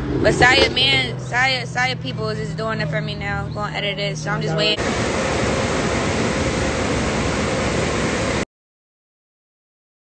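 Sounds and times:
loud rushing noise: 0.0s - 2.0s, 4.7s - 8.4s.

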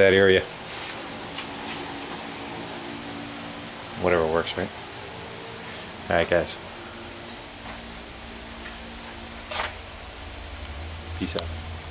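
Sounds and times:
steady low hum: 0.0s - 11.9s.

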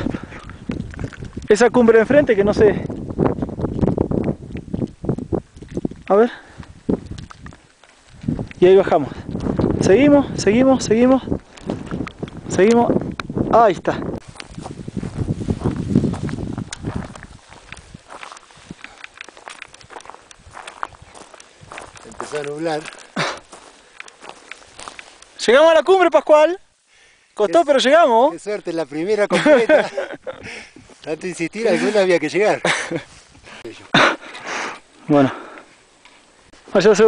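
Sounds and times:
footsteps on rocky ground: 0.0s - 25.6s
trekking pole clicks: 9.3s - 9.8s, 16.6s - 25.4s
person breathing hard: 26.8s - 27.4s, 30.4s - 30.9s, 33.4s - 35.8s.

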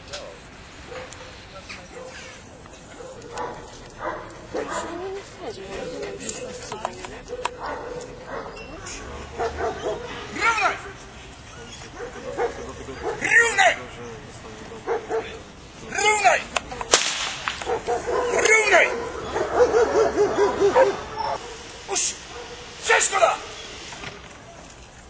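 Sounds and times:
dog yelping barks: 3.0s - 5.1s, 7.3s - 13.8s, 17.6s - 21.6s.

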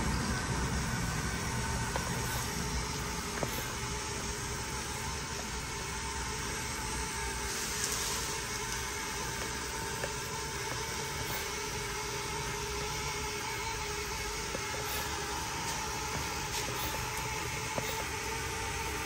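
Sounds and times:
small electric motors running: 0.0s - 19.0s.

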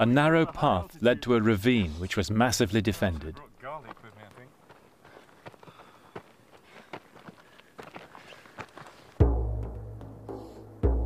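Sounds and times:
footsteps on gravel: 3.0s - 9.2s.

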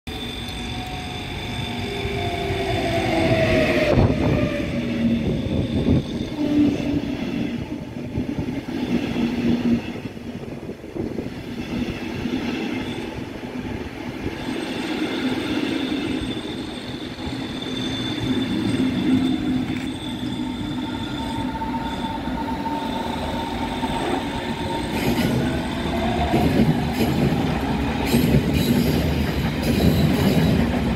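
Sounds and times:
electric locomotive whine: 0.1s - 30.9s
train coaches rumbling by: 0.1s - 30.9s.

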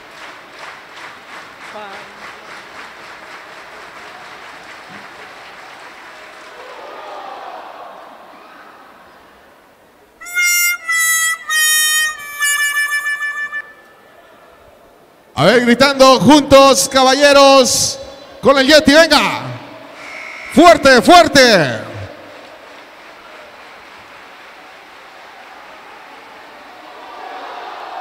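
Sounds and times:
rhythmic clapping: 0.0s - 6.7s, 21.6s - 26.0s
arena crowd noise: 0.0s - 28.0s.

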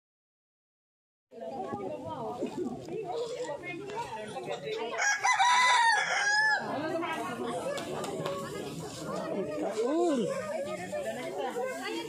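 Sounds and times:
rooster crowing: 4.9s - 6.7s.

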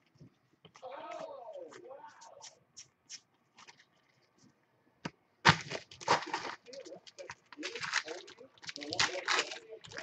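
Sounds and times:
foil wrappers crinkling: 5.5s - 10.0s.

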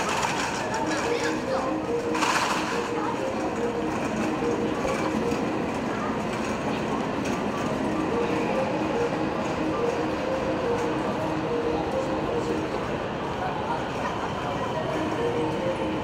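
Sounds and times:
train running gear rumbling: 0.0s - 16.0s.

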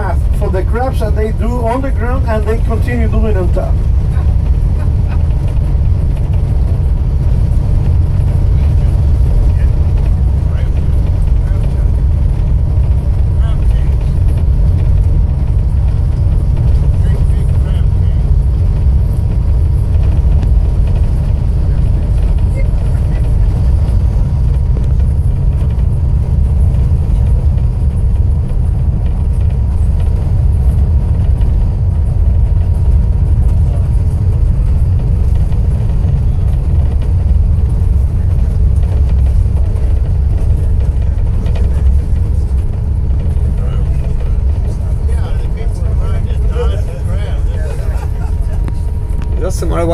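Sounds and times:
car tyres and engine rumbling: 0.0s - 49.9s.

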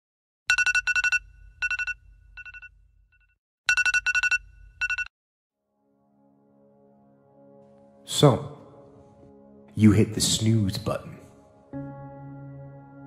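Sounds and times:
phone alarm ringtone: 0.5s - 2.8s, 3.7s - 5.1s.

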